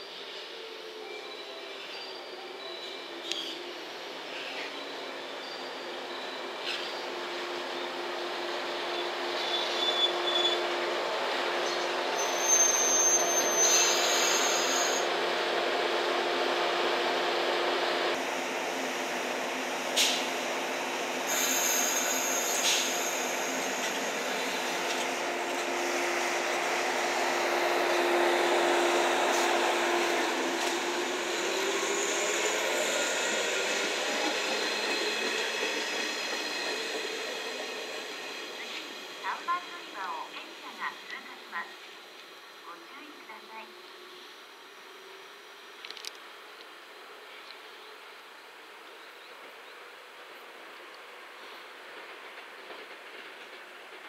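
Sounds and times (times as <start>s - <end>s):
electric train humming: 10.0s - 47.3s
high-pitched squeal: 20.1s - 39.5s.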